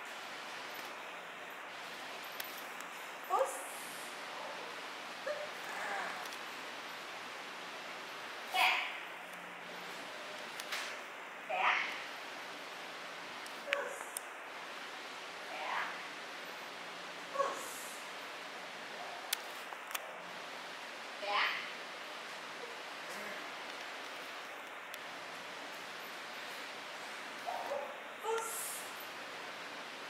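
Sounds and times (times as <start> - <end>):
steady background hiss: 0.0 - 30.0.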